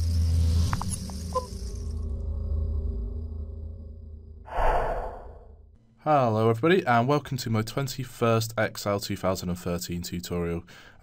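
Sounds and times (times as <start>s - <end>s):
hissing whoosh: 4.5s - 5.6s.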